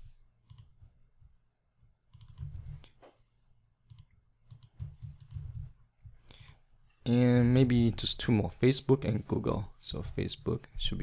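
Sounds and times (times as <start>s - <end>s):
computer mouse clicks: 0.5s - 0.8s, 2.1s - 3.0s, 3.9s - 5.7s, 6.3s - 6.6s.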